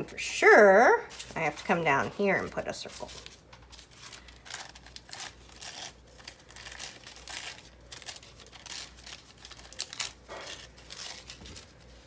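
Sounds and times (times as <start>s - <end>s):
tissue paper crinkling: 0.9s - 12.0s.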